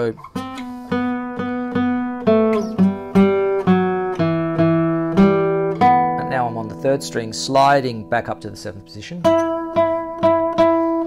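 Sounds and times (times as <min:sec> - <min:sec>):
fingerstyle nylon-string guitar: 0:00.0 - 0:11.0.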